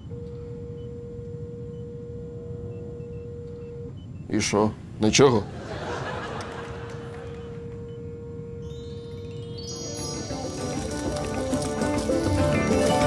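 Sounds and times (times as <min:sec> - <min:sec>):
electronic hum tone: 0:00.0 - 0:04.3, 0:06.9 - 0:10.0.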